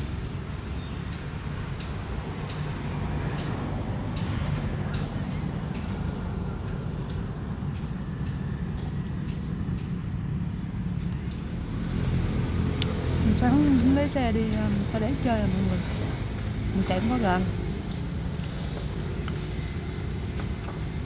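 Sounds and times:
motor engine rumble: 0:00.0 - 0:21.0.

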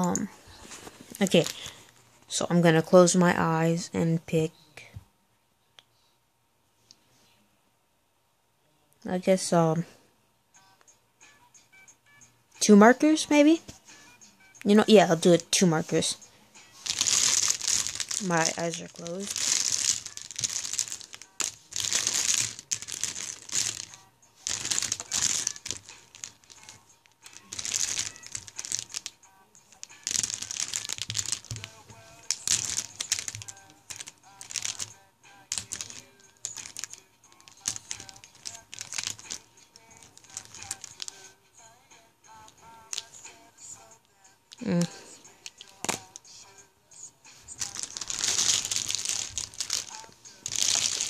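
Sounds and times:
plastic markers clattering: 0:16.8 - 0:34.9, 0:35.5 - 0:41.3, 0:42.4 - 0:43.2, 0:45.4 - 0:46.2, 0:47.5 - 0:51.0.

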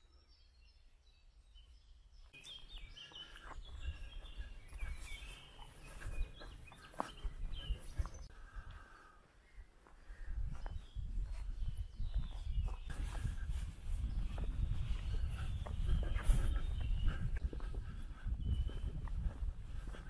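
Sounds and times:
small birds chirping: 0:00.0 - 0:20.0.

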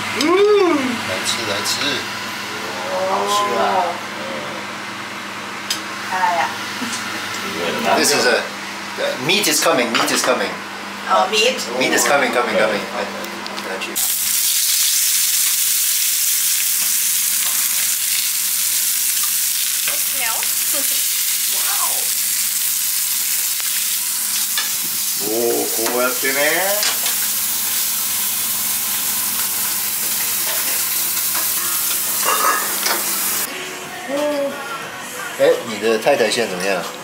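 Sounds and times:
meat sizzling in oil: 0:14.0 - 0:33.5.

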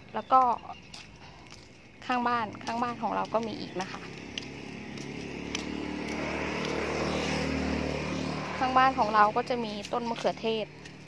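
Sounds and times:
vehicle engine passing: 0:02.1 - 0:11.0.

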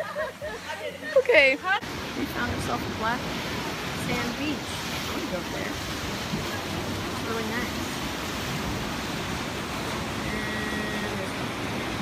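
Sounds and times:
surf washing against rocks: 0:00.0 - 0:12.0
wind: 0:00.0 - 0:12.0.

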